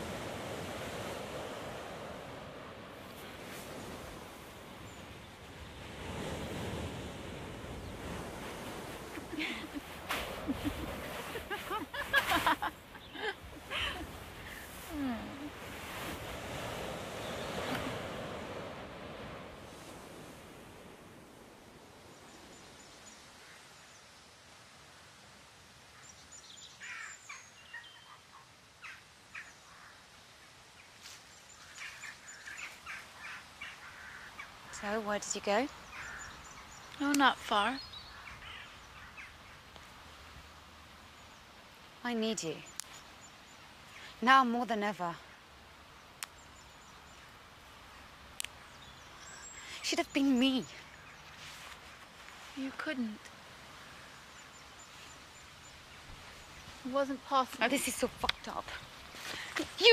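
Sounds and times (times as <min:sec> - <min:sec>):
surf washing on shingle beach: 0:00.0 - 0:26.0, 0:30.5 - 0:59.9
faint steady outdoor hiss: 0:00.0 - 0:59.9
woman laughing: 0:09.1 - 0:15.4
birds chirping and calling: 0:35.7 - 0:39.6.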